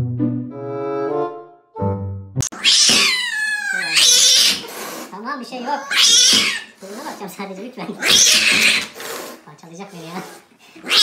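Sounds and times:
music with held notes: 0.0s - 2.5s
cat yowling: 2.6s - 4.7s, 5.7s - 6.7s, 8.0s - 8.9s.

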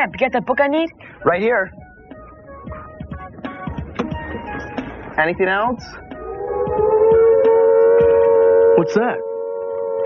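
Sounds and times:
air-raid siren wailing: 6.0s - 10.0s.

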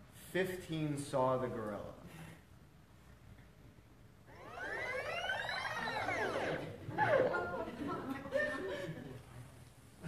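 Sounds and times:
audience going ooh: 4.3s - 9.2s.

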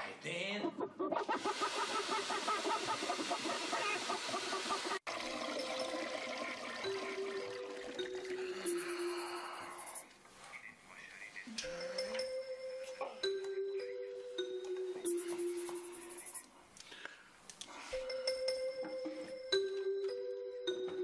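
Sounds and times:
hens clucking: 1.1s - 5.1s
soft music with held notes: 6.4s - 9.8s, 11.6s - 17.1s, 17.9s - 21.0s.

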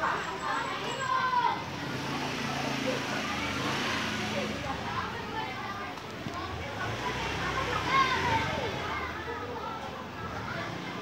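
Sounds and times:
voices talking in background: 0.0s - 11.0s.

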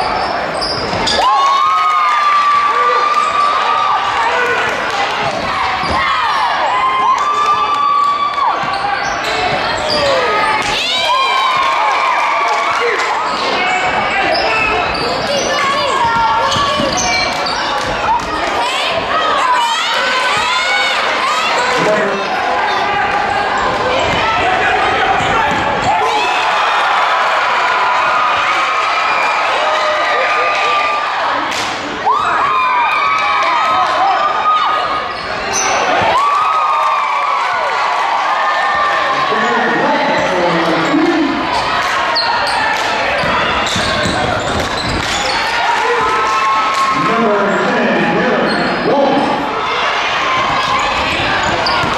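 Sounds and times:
crowd voices: 0.0s - 51.9s
spectators talking and calling out: 0.0s - 51.9s
sneakers squeaking on court: 0.1s - 1.2s, 8.6s - 10.7s, 13.2s - 18.4s, 42.1s - 45.6s, 50.6s - 51.9s
people shouting: 1.1s - 31.4s, 41.1s - 51.9s
basketball bouncing: 43.2s - 45.3s, 50.6s - 51.9s.

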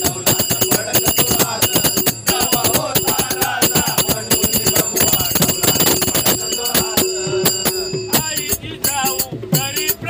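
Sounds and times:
brass hand cymbals ringing: 0.0s - 10.0s
drum beats: 0.0s - 10.0s.

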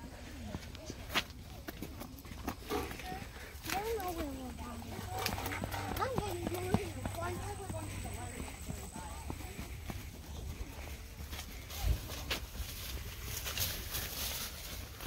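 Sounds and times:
footsteps crunching on dirt: 0.0s - 15.0s.

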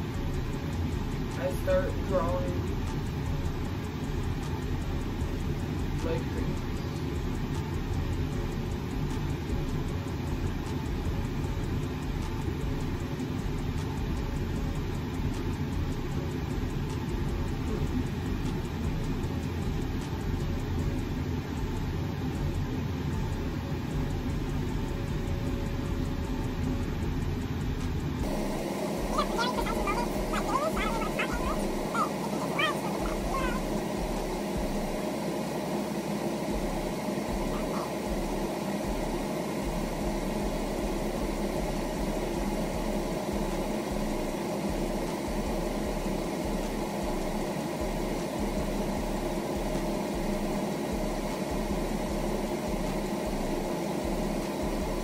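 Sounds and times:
low rumbling background noise: 0.0s - 55.0s.

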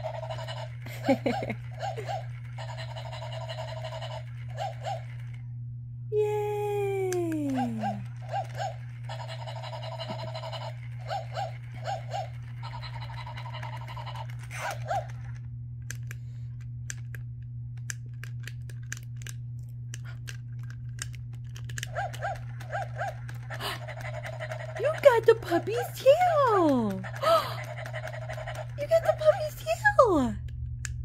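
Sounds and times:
toy electronic yips and panting: 0.0s - 5.4s, 7.4s - 15.4s, 21.8s - 30.0s
low motor hum: 0.0s - 31.0s
rapid mechanical clicking: 20.2s - 29.3s.

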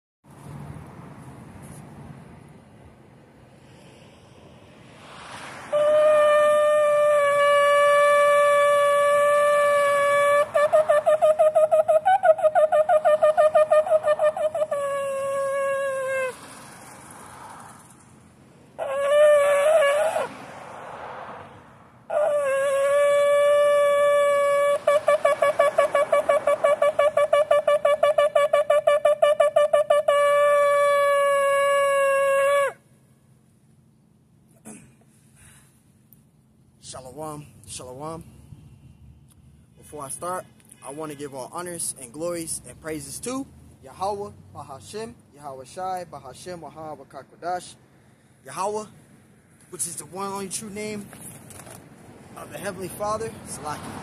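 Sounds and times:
low wind: 0.2s - 54.0s
street noise: 0.2s - 54.0s
horn blast: 5.7s - 11.5s
shofar blowing: 5.7s - 16.4s, 22.1s - 32.8s
breath rushing into a horn: 34.7s - 35.9s.

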